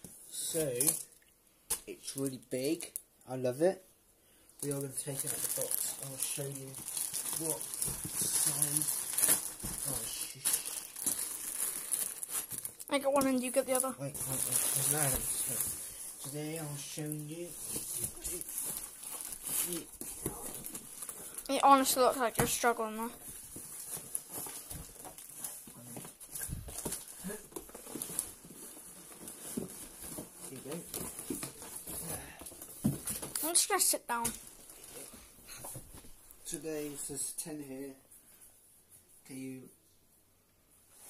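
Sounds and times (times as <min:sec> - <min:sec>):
plastic wrapping crinkling: 0:04.6 - 0:35.1.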